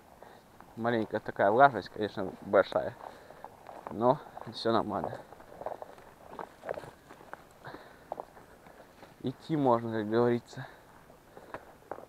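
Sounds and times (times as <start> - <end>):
footsteps through forest undergrowth: 0.0 - 12.0.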